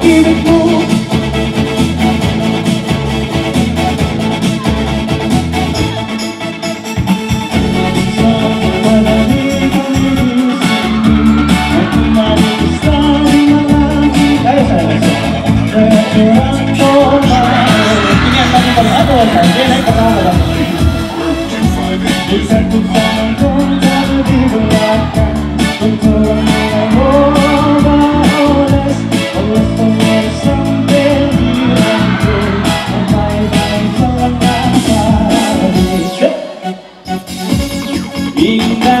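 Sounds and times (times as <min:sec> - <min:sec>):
man singing: 0:00.0 - 0:01.6, 0:07.7 - 0:36.9, 0:38.2 - 0:39.0
steady beat: 0:00.0 - 0:36.2
guitar: 0:00.0 - 0:39.0
live band playing pop: 0:00.0 - 0:39.0.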